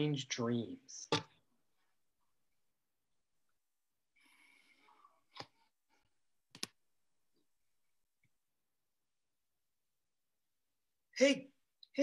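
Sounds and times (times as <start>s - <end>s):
computer mouse clicks: 6.5s - 6.8s.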